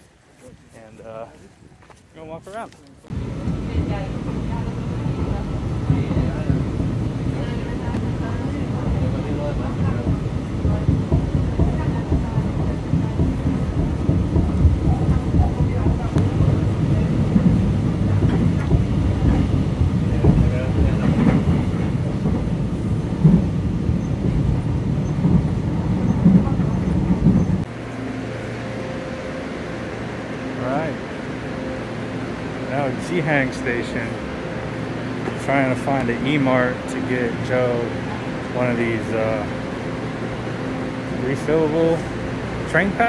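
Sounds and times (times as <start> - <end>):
train hum: 0.0 - 43.0
train wheels rumbling on rails: 0.7 - 43.0.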